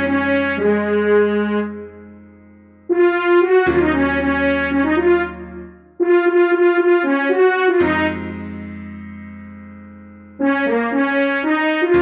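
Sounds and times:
french horn melody: 0.0s - 2.2s, 2.9s - 8.6s, 10.4s - 12.0s.

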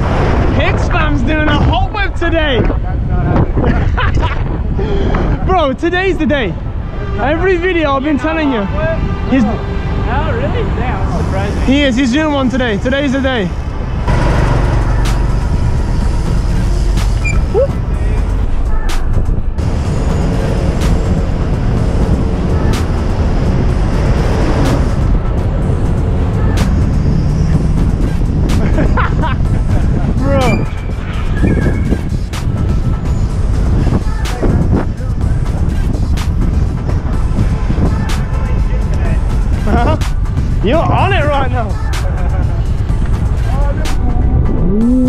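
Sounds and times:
wind rushing over camera: 0.0s - 5.5s
city traffic noise: 0.0s - 45.0s.

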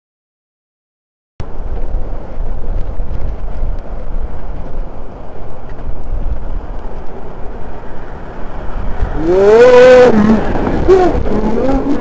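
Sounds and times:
traffic noise: 1.4s - 12.0s
wind rumble on microphone: 1.4s - 12.0s.

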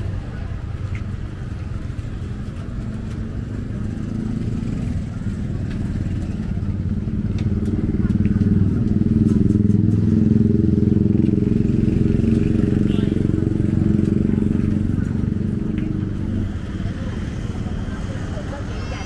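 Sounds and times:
people chattering: 0.0s - 19.0s.

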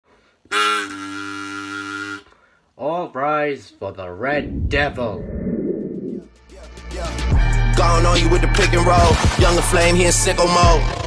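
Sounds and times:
party blower buzzing honk: 0.5s - 2.3s.

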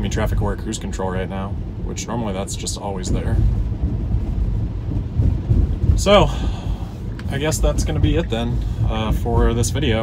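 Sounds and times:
tyres rumbling on wet road: 0.0s - 10.0s.

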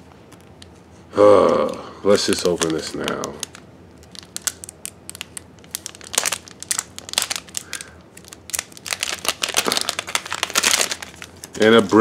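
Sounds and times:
plastic packaging crinkling and tearing: 1.4s - 12.0s.

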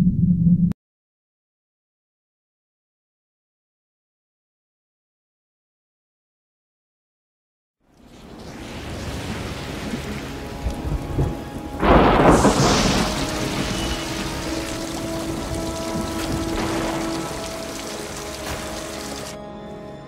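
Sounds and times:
rain hissing: 7.9s - 19.4s
loud thunderclap: 8.0s - 19.4s
low musical drone: 8.6s - 20.0s.

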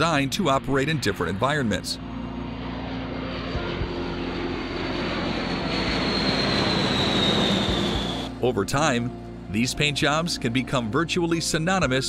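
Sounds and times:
high jet engine whine: 0.0s - 12.0s
jet aircraft rumbling overhead: 0.0s - 12.0s.

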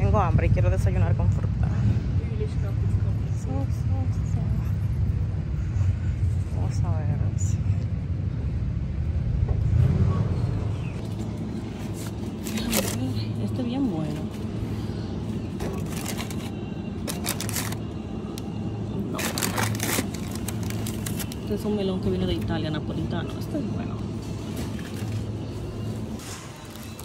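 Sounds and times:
street hum: 0.0s - 27.0s.

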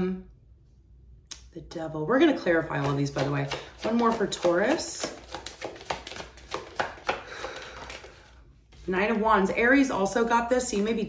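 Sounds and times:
cards being shuffled: 2.7s - 9.4s.

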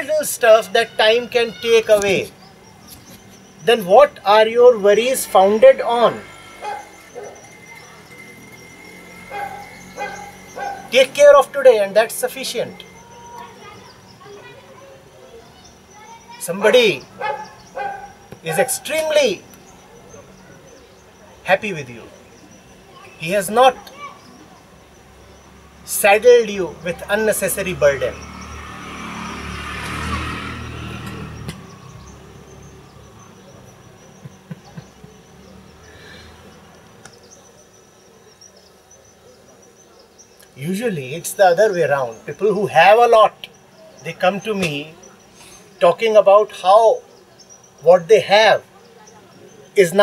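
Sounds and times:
vehicle passing by: 4.6s - 11.7s, 25.5s - 37.0s.

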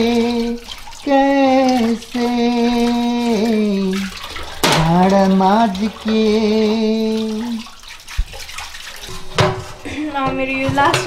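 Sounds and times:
sponge scrubbing dishes: 0.0s - 11.0s
tap water running into sink: 0.0s - 11.0s.

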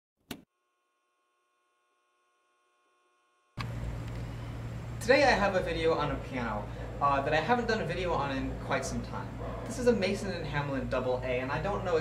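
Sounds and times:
room noise with low hum: 3.6s - 12.0s.

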